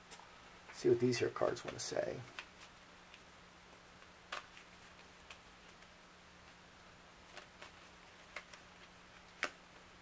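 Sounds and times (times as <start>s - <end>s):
faint steady hum: 0.0s - 10.0s
playing cards clicking: 4.0s - 5.9s, 7.3s - 9.6s.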